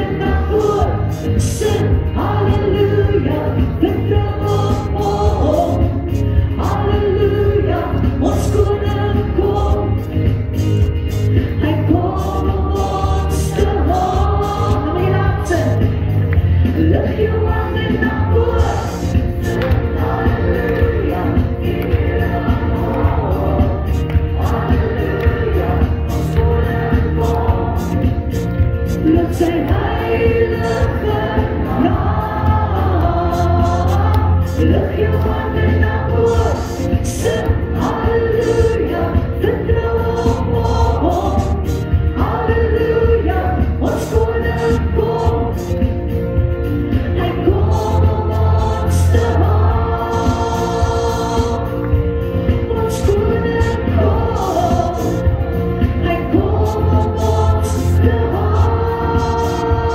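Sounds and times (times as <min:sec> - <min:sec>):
choir-like backing voices: 0:00.0 - 0:59.9
music with strong bass: 0:00.0 - 0:59.9.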